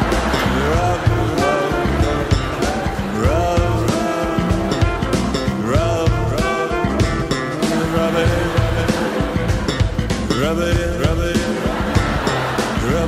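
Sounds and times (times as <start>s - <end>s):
bass: 0.0s - 13.0s
drums: 0.0s - 13.0s
funk band playing: 0.0s - 13.0s
swooping lead notes: 0.0s - 13.0s.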